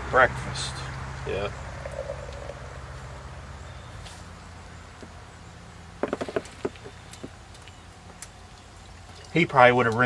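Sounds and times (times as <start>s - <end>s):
low background hum: 0.0s - 10.0s
bottle ticking against glass: 1.6s - 2.9s
beer pouring into a glass: 1.7s - 2.9s.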